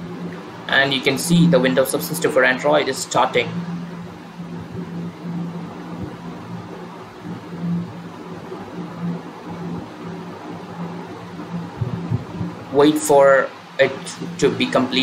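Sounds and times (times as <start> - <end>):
steady low hum with hiss: 0.0 - 15.0.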